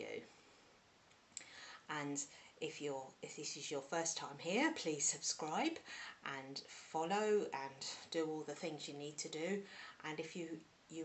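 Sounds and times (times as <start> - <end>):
woman speaking: 0.0 - 0.2, 1.4 - 11.0
intake of breath: 1.4 - 2.6, 5.8 - 6.9, 9.7 - 10.0.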